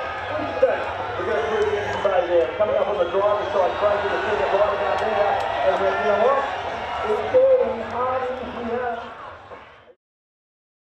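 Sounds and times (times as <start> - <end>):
man talking: 0.3 - 8.0.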